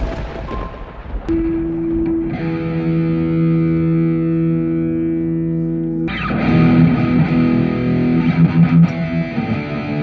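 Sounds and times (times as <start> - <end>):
low thunder-like rumble: 0.0 - 4.2.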